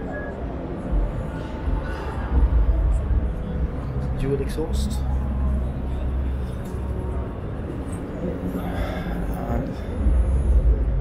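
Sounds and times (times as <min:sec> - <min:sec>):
murmur of crowd voices: 0:00.0 - 0:11.0
low rumble: 0:09.7 - 0:11.0.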